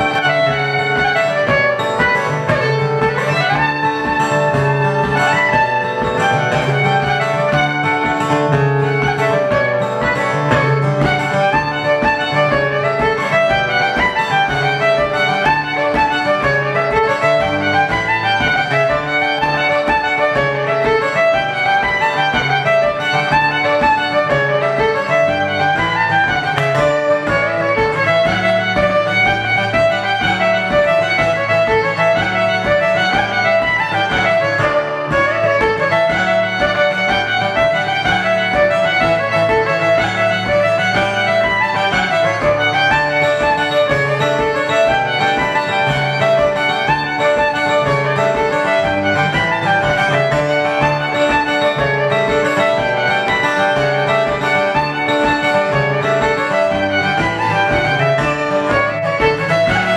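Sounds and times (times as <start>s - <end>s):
bowed fiddle melody: 0.0s - 59.9s
strummed acoustic guitar chords: 0.0s - 59.9s.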